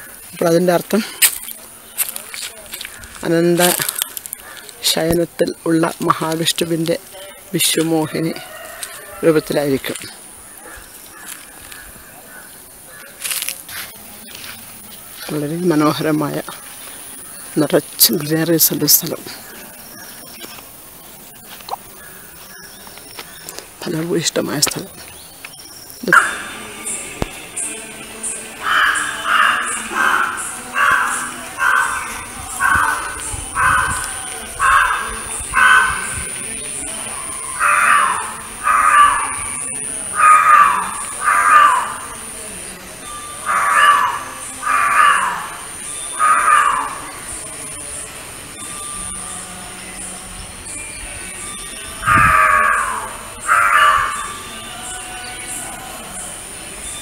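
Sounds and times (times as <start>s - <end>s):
crows cawing: 1.9s - 4.9s, 7.8s - 13.8s, 14.4s - 17.7s, 21.9s - 22.6s, 26.1s - 26.7s, 28.4s - 42.3s, 43.2s - 47.4s, 52.0s - 54.6s.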